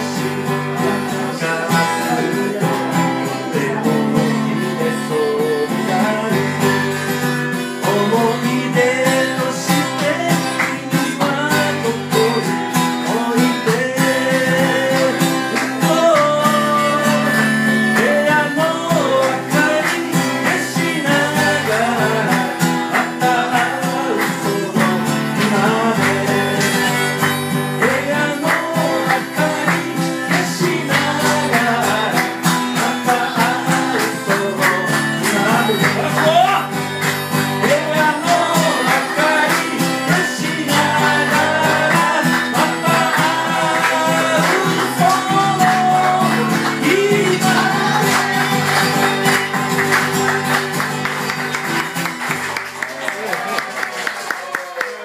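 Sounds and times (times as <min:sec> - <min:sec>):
man singing: 0:00.0 - 0:50.5
acoustic guitar strumming: 0:00.0 - 0:53.1.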